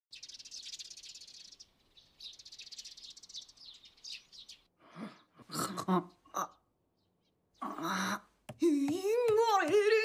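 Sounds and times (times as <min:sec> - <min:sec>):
sparrows chirping: 0:00.1 - 0:10.0.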